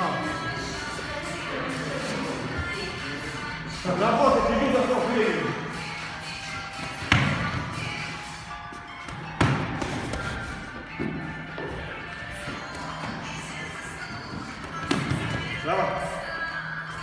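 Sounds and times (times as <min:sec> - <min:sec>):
background music: 0:00.0 - 0:17.0
boxing gloves punching pads: 0:09.0 - 0:10.4.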